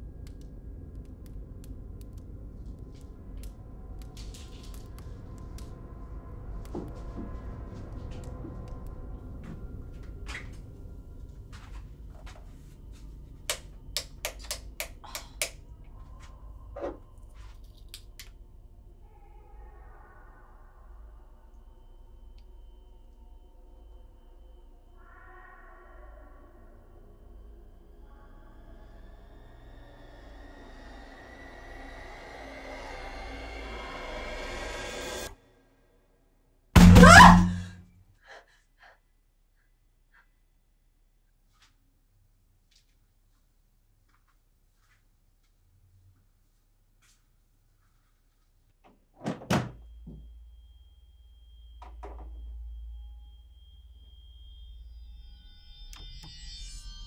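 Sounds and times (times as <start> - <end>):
high ringing tones: 49.9 - 57.0.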